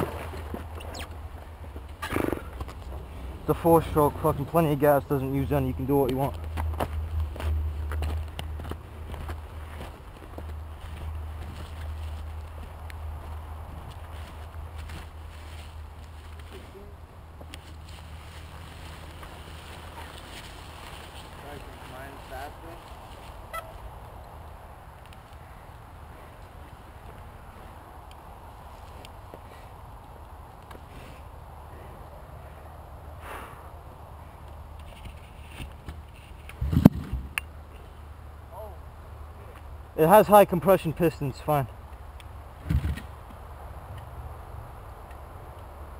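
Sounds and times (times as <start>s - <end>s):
footsteps on gravel and grass: 6.1s - 24.0s.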